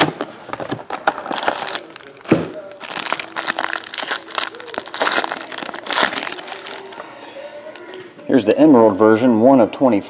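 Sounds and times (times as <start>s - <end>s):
foil wrapper tearing and crinkling: 1.1s - 7.0s.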